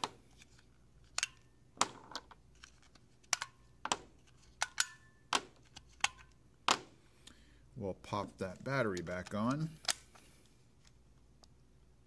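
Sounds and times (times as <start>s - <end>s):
batteries clicking and clacking: 8.5s - 10.2s.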